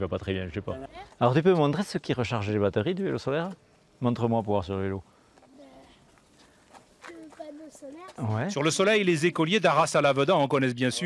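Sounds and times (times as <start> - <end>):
faint children's voices: 5.4 - 8.4.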